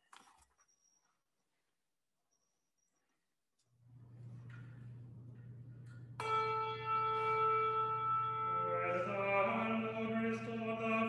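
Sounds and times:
bell-like note ringing: 6.2 - 9.2.

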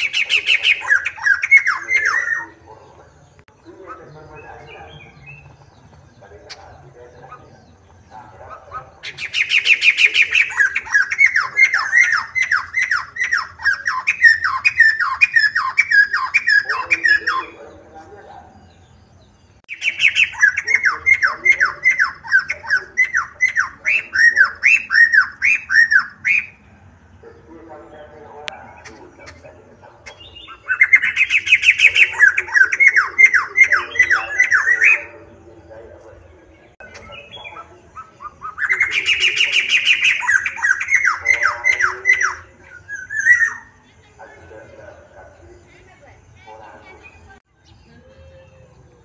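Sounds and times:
bird singing whistled notes: 0.0 - 17.8, 18.5 - 27.2, 30.1 - 35.5, 36.6 - 44.2.

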